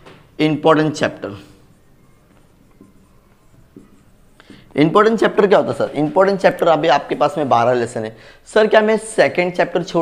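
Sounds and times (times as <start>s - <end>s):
marker pen writing on whiteboard: 0.0s - 8.0s
man talking: 0.4s - 1.6s, 4.7s - 10.0s.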